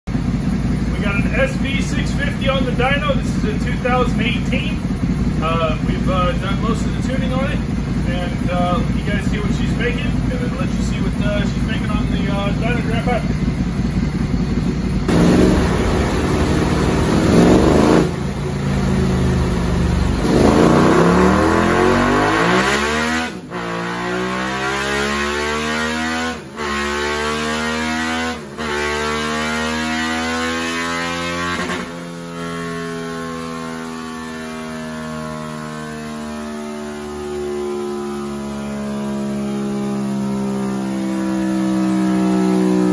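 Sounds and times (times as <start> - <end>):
motorcycle engine revving: 0.1 - 42.9.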